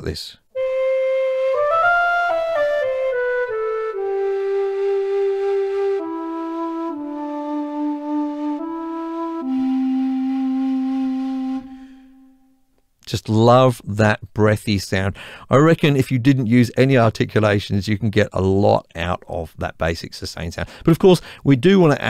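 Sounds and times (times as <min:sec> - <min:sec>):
breathy bamboo flute melody: 0:00.5 - 0:12.6.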